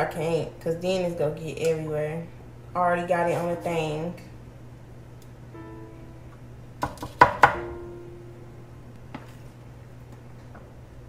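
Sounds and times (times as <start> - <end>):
low hum: 4.2 - 6.8, 7.6 - 11.0
sparse plucked background music: 5.6 - 6.8, 7.4 - 9.2.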